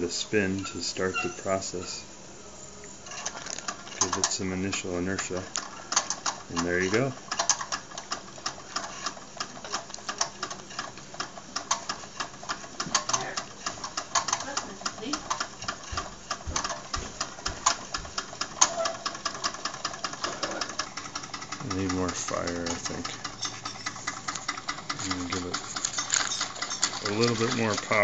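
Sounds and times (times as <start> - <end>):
toy steam engine clicking: 3.0 - 28.0.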